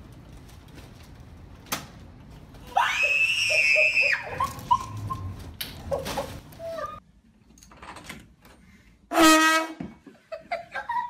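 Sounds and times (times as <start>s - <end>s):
woman screaming: 2.7s - 4.5s.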